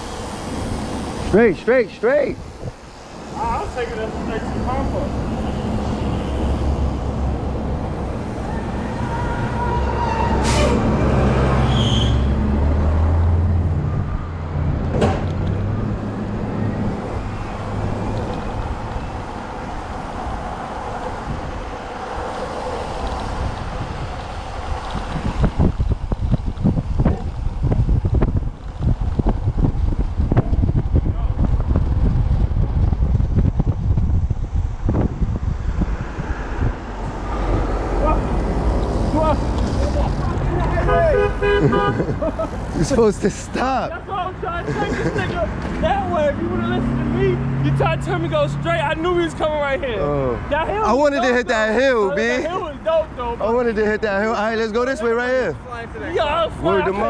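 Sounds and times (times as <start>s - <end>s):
wind buffeting microphone: 0.0s - 11.6s, 12.6s - 43.4s
bus engine rumbling: 0.0s - 57.0s
street traffic: 0.0s - 57.0s.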